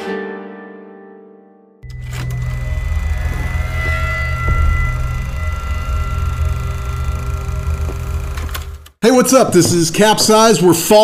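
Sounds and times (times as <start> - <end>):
faint held tones: 1.8 - 8.7
low rumbling drone: 1.8 - 8.9.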